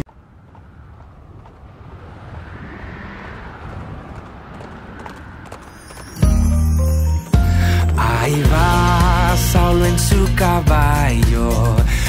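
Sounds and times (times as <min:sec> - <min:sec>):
horse galloping hoofbeats: 0:00.0 - 0:01.8, 0:04.1 - 0:06.8.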